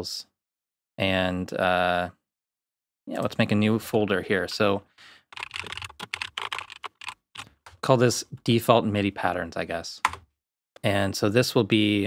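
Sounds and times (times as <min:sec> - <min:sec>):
keyboard typing clicks: 0:05.4 - 0:07.8, 0:10.0 - 0:10.2.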